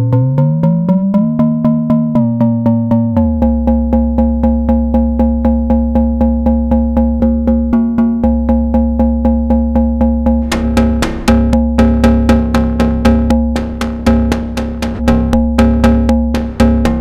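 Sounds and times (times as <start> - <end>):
short pitched synth strikes: 10.4 - 17.0.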